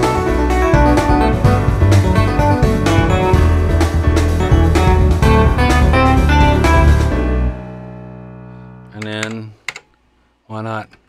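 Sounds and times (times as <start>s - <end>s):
electric piano chord: 0.0s - 9.0s.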